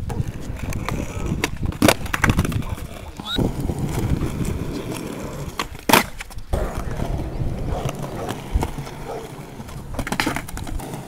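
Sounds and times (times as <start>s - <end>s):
skateboard clacks: 0.0s - 11.0s
skateboard wheels rolling on concrete: 0.0s - 11.0s.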